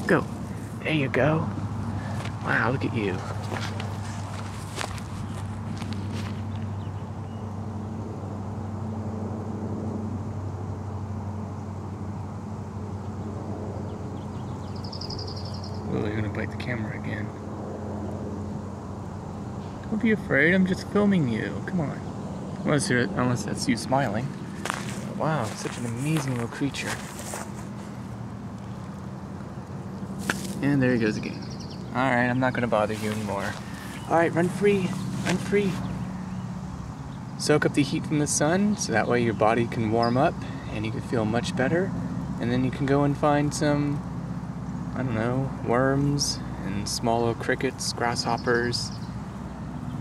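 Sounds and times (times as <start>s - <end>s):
steady low hum: 0.0s - 50.0s
footsteps in dry grass: 3.2s - 6.7s, 24.3s - 29.0s, 30.0s - 30.6s, 32.7s - 36.2s.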